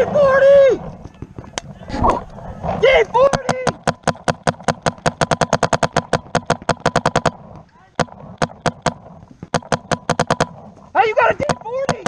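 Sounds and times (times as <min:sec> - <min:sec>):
paintball marker firing: 0:01.0 - 0:12.0.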